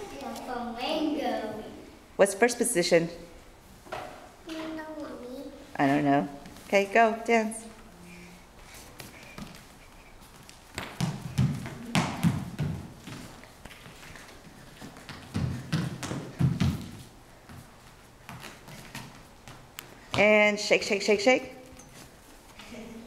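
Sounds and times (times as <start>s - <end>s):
child's feet tapping on floor: 8.6s - 20.5s.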